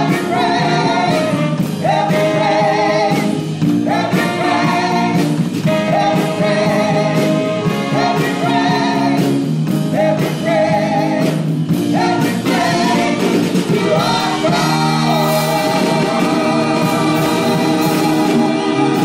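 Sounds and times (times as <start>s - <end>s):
gospel singing with vibrato: 0.0s - 19.0s
musical backing: 0.0s - 19.0s.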